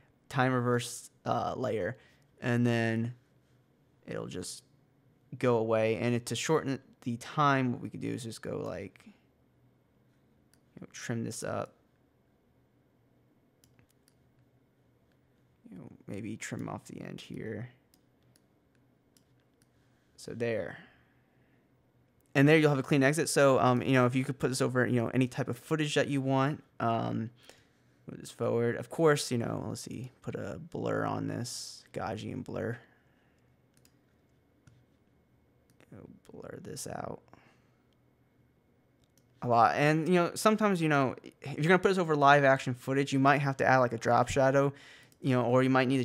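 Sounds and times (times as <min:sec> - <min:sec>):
faint computer mouse clicks: 0:33.7 - 0:34.0.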